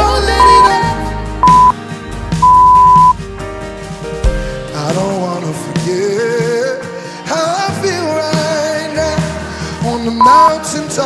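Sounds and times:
pop music with drums: 0:00.0 - 0:11.0
long electronic beep: 0:00.4 - 0:00.8, 0:01.4 - 0:01.8, 0:02.4 - 0:03.2, 0:10.2 - 0:10.6.

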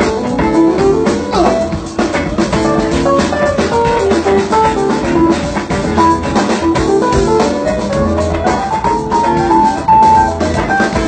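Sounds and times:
drum kit steady beat: 0:00.0 - 0:11.0
electric guitar: 0:00.0 - 0:11.0
keyboard lines: 0:00.0 - 0:11.0.

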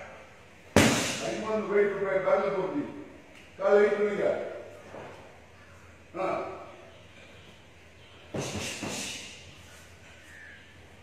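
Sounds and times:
strike smacking kick shield: 0:00.8 - 0:01.2.

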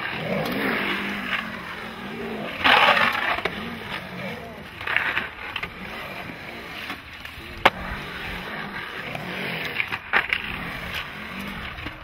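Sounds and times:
skateboard clack: 0:00.0 - 0:12.0
skateboard wheels rolling on concrete: 0:00.0 - 0:12.0.

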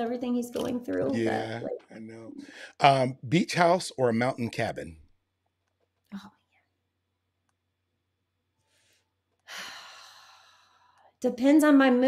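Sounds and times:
short vocal sound: 0:01.1 - 0:02.5.

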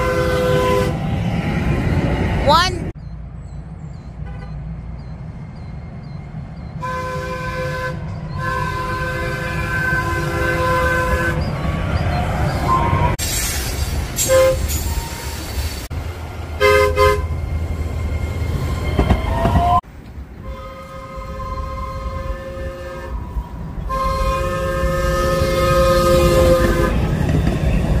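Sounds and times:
train horn blasts: 0:00.0 - 0:01.0, 0:06.8 - 0:11.4, 0:14.2 - 0:14.7, 0:16.6 - 0:17.4, 0:20.4 - 0:23.2, 0:23.8 - 0:27.2
low rumble of train: 0:00.0 - 0:28.0.

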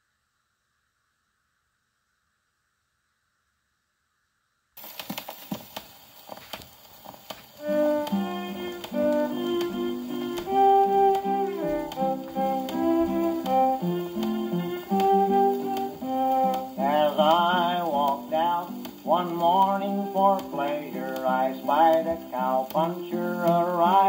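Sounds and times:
record surface crackle and clicks: 0:04.8 - 0:24.0
fiddle melody: 0:07.5 - 0:24.0
guitar chords: 0:07.6 - 0:24.0.

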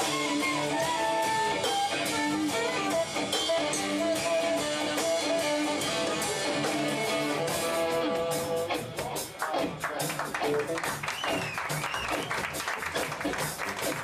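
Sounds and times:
electric guitar: 0:00.0 - 0:14.0
jazz fusion band playing: 0:00.0 - 0:14.0.

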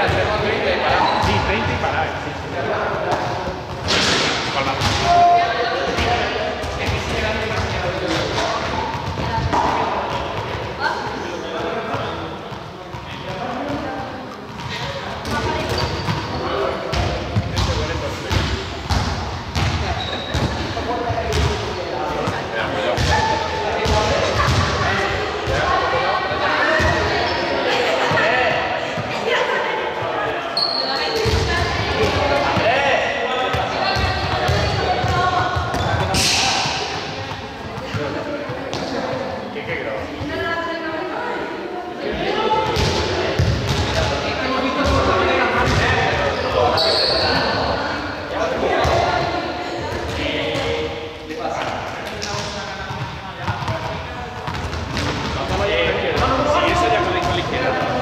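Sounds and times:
balls bouncing on hall floor: 0:00.0 - 0:02.0, 0:02.6 - 0:26.0, 0:26.6 - 0:29.3, 0:31.1 - 0:40.5, 0:42.4 - 0:46.3, 0:48.6 - 0:50.8, 0:51.6 - 0:58.0
people chattering: 0:00.0 - 0:58.0.

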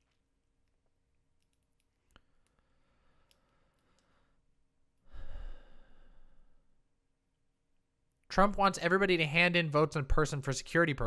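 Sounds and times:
person sighing: 0:05.0 - 0:06.6.

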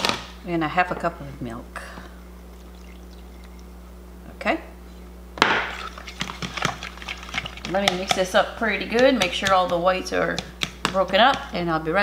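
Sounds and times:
steady low hum: 0:00.2 - 0:12.0
milk pouring: 0:02.5 - 0:03.8, 0:05.6 - 0:07.8
fork mixing egg: 0:05.8 - 0:11.6.

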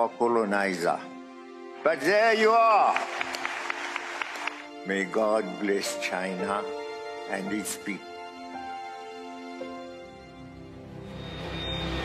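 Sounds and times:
background music: 0:00.0 - 0:12.0
man's voice: 0:01.8 - 0:03.2
audience applauding: 0:02.5 - 0:04.7.

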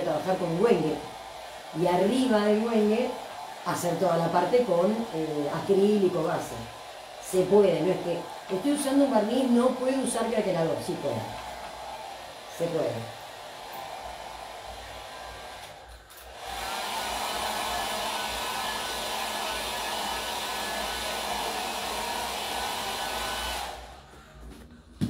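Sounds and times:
hot-air dryer running: 0:00.0 - 0:25.0.

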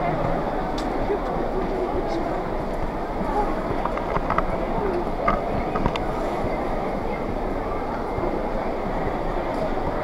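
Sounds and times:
rumbling market hubbub: 0:00.0 - 0:10.0.

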